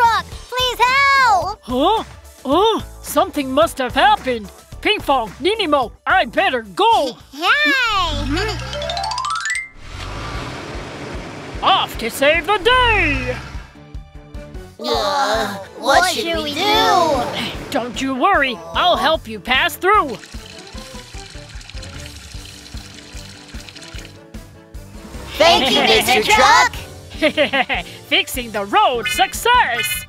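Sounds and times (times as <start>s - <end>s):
background music: 0.0s - 30.0s
rumbling vehicle: 9.8s - 14.0s
cartoon cement pouring: 20.0s - 24.2s.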